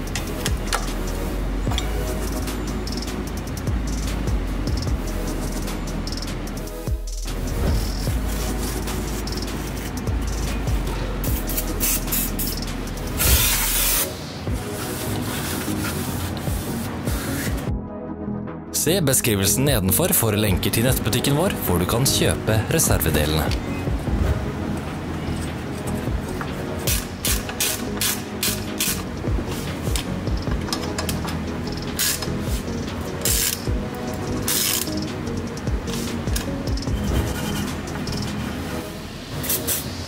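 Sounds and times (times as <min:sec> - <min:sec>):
faint background music: 0:00.0 - 0:40.0
ratchet wrench clicking: 0:01.8 - 0:07.3, 0:08.7 - 0:10.6, 0:11.2 - 0:14.0, 0:26.9 - 0:29.1, 0:29.9 - 0:36.9, 0:37.9 - 0:38.4
aerosol spray hissing: 0:13.2 - 0:14.1.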